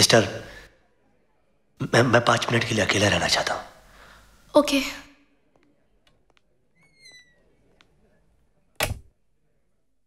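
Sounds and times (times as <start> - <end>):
short falling squeak: 6.8 - 7.5.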